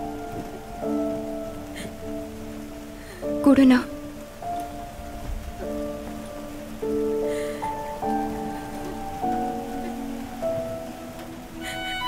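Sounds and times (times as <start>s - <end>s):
rain hissing: 0.0s - 12.0s
soft film score with held notes: 0.0s - 12.0s.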